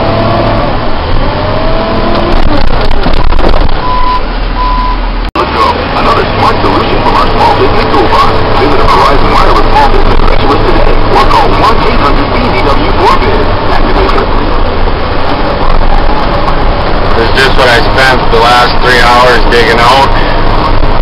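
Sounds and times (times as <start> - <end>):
heavy machine engine droning: 0.0 - 21.0.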